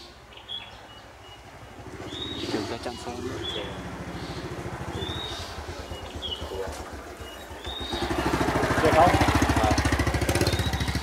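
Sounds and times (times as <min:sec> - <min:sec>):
bird chirps: 0:00.0 - 0:11.0
small engine pulsing: 0:01.6 - 0:11.0.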